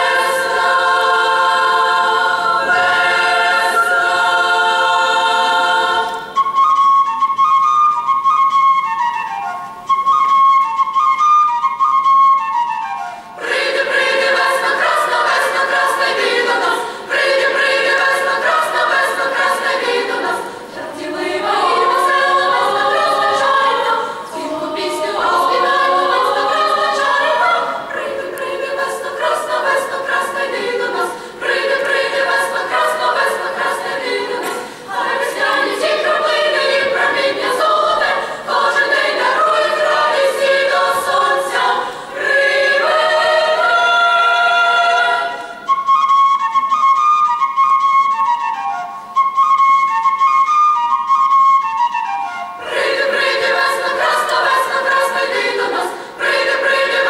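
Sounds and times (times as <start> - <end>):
youth choir singing: 0.0 - 6.4, 13.4 - 45.7, 52.6 - 57.0.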